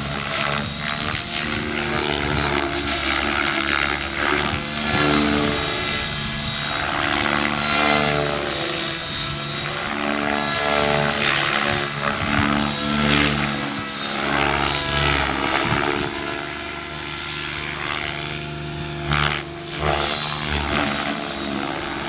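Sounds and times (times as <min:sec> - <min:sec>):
helicopter rotor blades beating: 0:00.0 - 0:22.0.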